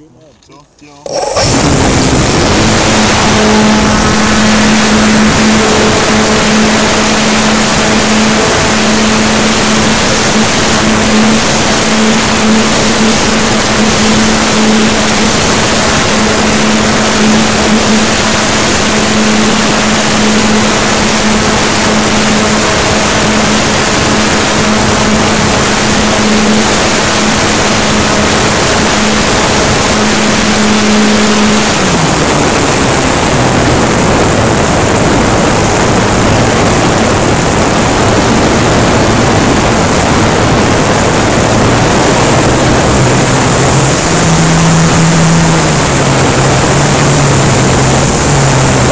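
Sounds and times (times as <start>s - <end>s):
model airplane motor and propeller: 0.0s - 48.9s
wind rush: 1.2s - 48.9s.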